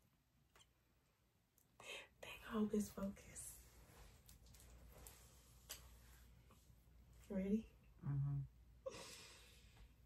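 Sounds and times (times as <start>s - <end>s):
person whispering: 8.0s - 8.5s.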